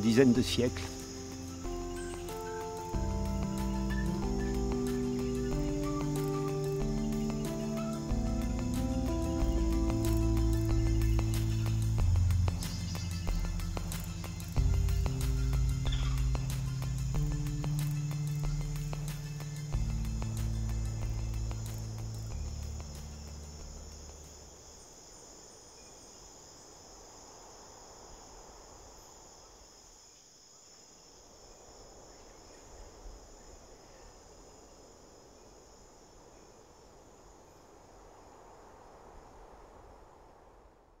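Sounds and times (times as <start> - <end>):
low music notes: 0.0 - 23.9
background hiss: 0.0 - 41.0
insects chirping: 0.0 - 41.0.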